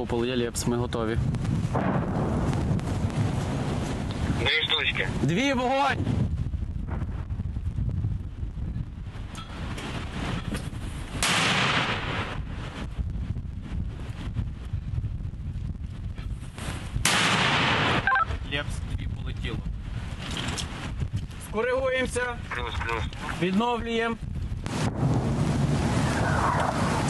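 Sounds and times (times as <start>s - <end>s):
mortar launch report: 0.0s - 8.3s, 11.1s - 12.9s, 17.0s - 19.8s, 21.4s - 27.0s
steady low rumble: 0.1s - 16.2s, 20.8s - 27.0s.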